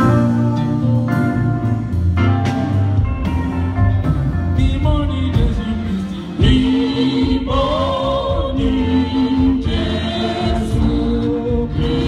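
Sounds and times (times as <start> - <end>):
choir singing into microphones: 5.9 - 12.0.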